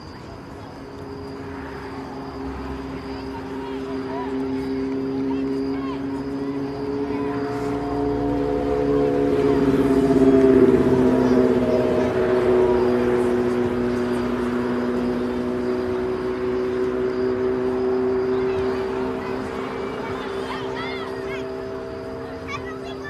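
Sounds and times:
engine drone: 0:00.0 - 0:23.0.

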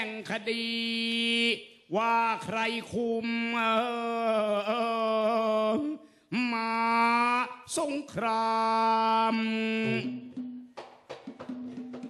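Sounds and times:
person chanting long vowel: 0:08.6 - 0:10.7.

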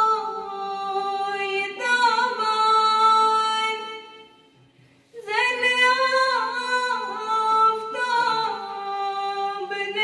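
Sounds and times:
woman singing unaccompanied: 0:00.0 - 0:04.3, 0:05.2 - 0:10.0.

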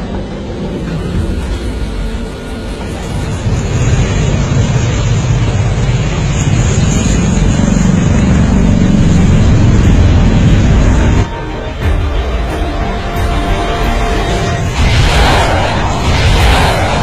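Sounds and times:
aircraft engine roar: 0:00.0 - 0:17.0.

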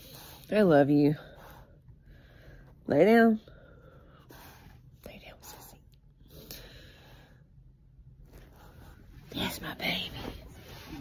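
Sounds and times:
faint whispering: 0:05.0 - 0:06.4, 0:08.9 - 0:11.0.

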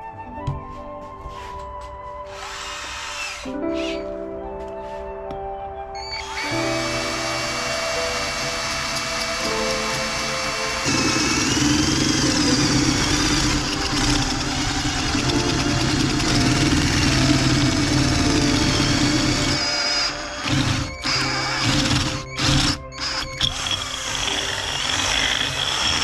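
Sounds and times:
background music: 0:00.0 - 0:26.0
cordless drill grinding: 0:02.3 - 0:04.0, 0:06.1 - 0:26.0.

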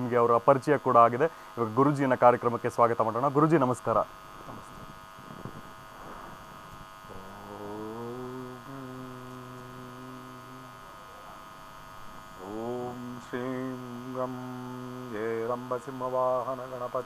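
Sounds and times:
man chanting low held notes: 0:07.1 - 0:10.9, 0:12.4 - 0:17.0.

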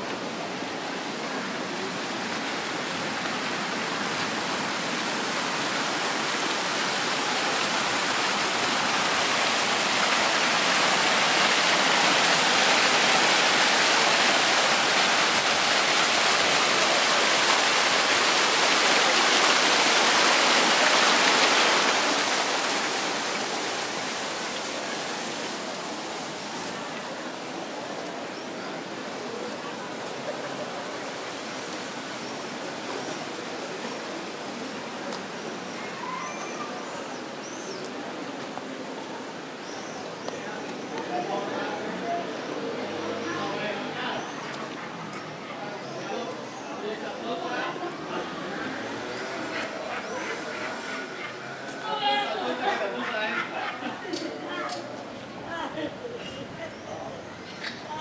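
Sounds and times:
fountain water splashing: 0:00.0 - 0:58.0.

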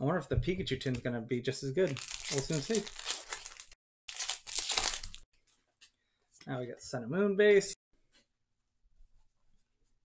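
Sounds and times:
foil wrapper crinkling: 0:01.9 - 0:05.2.

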